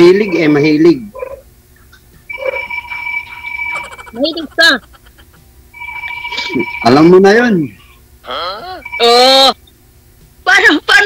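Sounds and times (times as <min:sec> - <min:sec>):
steady two-pitch electronic tone: 0:00.0 - 0:01.3, 0:02.2 - 0:04.6, 0:08.6 - 0:09.5.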